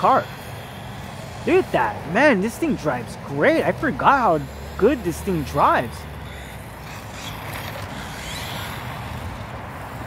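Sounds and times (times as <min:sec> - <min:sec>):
electric motor whine: 0:00.0 - 0:10.0.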